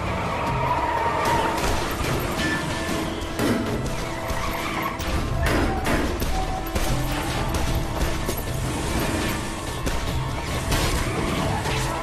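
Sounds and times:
action film music: 0.0s - 12.0s
tyres skidding: 0.0s - 12.0s.

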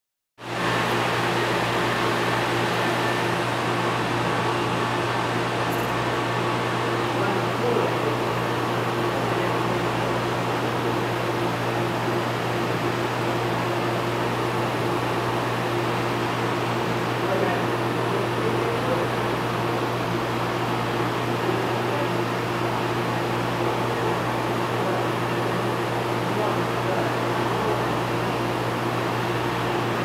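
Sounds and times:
mechanical hum: 0.4s - 30.0s.

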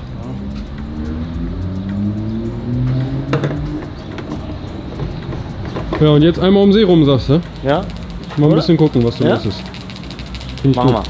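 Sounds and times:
car engine accelerating: 0.0s - 5.9s
sharp click: 7.4s - 11.0s.

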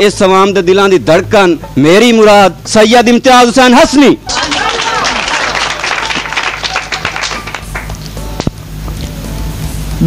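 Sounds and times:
audience applauding: 4.3s - 8.1s.

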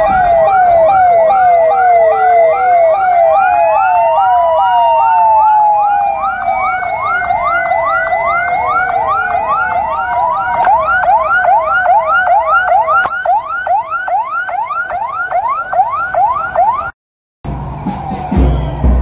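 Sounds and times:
police siren yelp: 0.0s - 19.0s
wailing siren: 0.0s - 19.0s.

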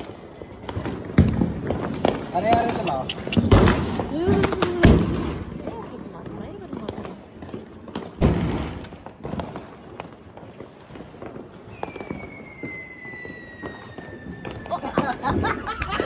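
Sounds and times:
whistling firework: 0.0s - 5.8s, 7.5s - 16.0s
firecracker bang: 0.0s - 16.0s
small firecracker pops: 0.0s - 16.0s.

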